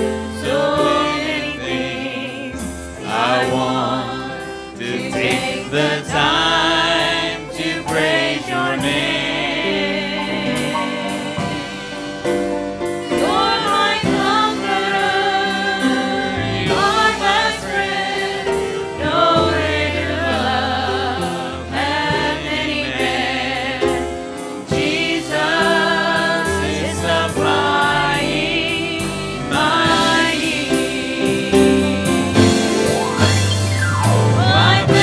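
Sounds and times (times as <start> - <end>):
women singing gospel: 0.0 - 12.4, 13.0 - 33.4, 34.3 - 35.0
piano accompaniment: 0.0 - 35.0.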